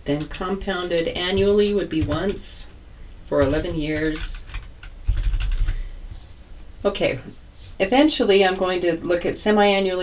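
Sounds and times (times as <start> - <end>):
keyboard typing: 0.0 - 2.7, 3.3 - 5.8.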